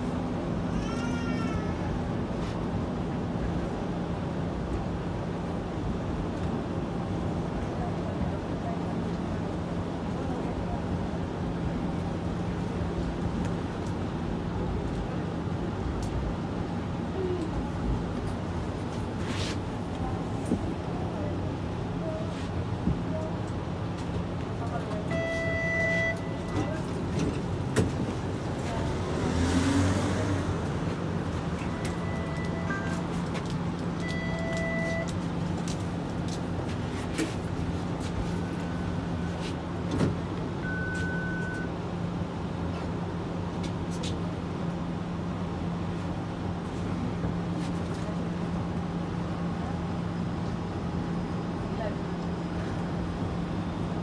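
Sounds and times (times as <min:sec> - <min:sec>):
rolling interior noise: 0:00.0 - 0:54.0
short electronic beeps: 0:25.1 - 0:26.7, 0:34.0 - 0:35.1, 0:40.6 - 0:41.7.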